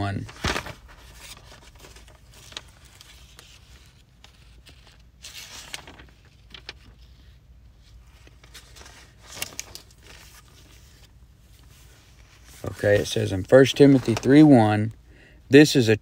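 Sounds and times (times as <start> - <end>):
paper rustling: 0.0 - 14.9
low steady hum: 0.0 - 16.0.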